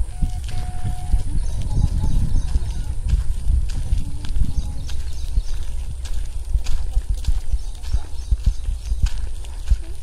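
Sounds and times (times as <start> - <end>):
footsteps on dirt: 0.0 - 10.0
wind rumble on microphone: 0.0 - 10.0.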